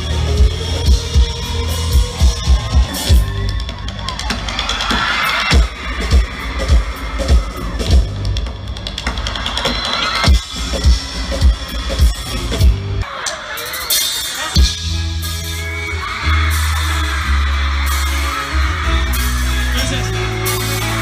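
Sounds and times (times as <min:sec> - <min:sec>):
crowd cheering and screaming: 0:00.0 - 0:21.0
live rock band playing: 0:00.0 - 0:21.0.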